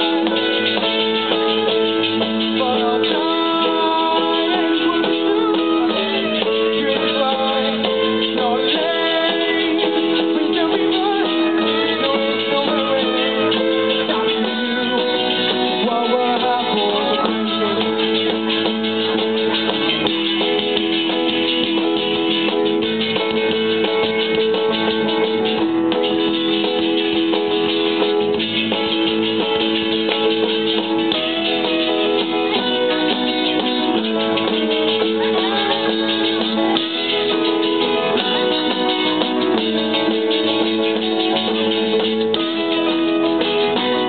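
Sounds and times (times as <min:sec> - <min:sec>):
held keyboard notes: 0:00.0 - 0:44.0
live rock band playing: 0:00.0 - 0:44.0.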